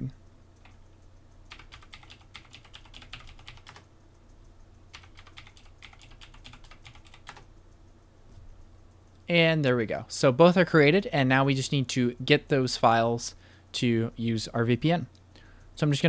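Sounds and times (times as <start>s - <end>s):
quiet keyboard typing: 0.0s - 9.3s.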